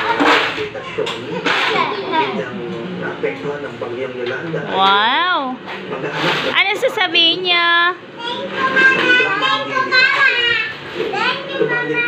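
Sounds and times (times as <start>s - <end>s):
young children chattering: 0.0s - 3.1s, 8.0s - 12.0s.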